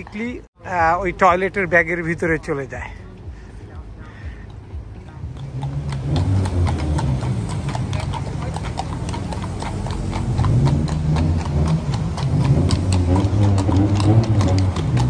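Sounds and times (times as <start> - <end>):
hooves clip-clopping on asphalt: 0.0 - 15.0
low rumble of street traffic: 0.0 - 15.0.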